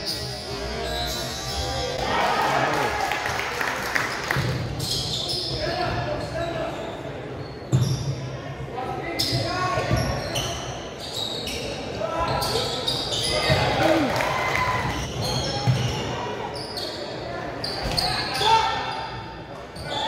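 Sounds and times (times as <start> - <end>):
voices in gym: 0.0 - 20.0
sneakers squeaking on court: 4.4 - 8.2, 9.2 - 13.8, 14.9 - 20.0.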